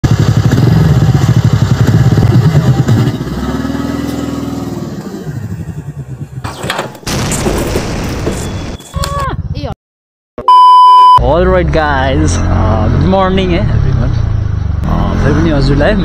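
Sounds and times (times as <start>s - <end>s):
scooter engine revving: 0.0s - 6.4s.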